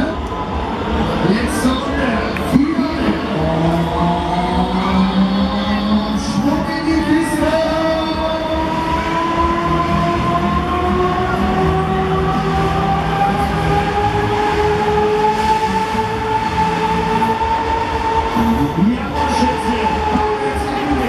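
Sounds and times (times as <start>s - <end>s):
fairground ride motor whine: 0.0s - 21.0s.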